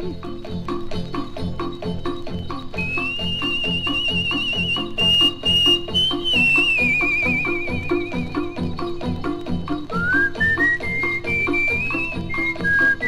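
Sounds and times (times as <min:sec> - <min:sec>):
bouncy orchestral accompaniment: 0:00.0 - 0:13.0
high whistle-like melody: 0:01.4 - 0:13.0.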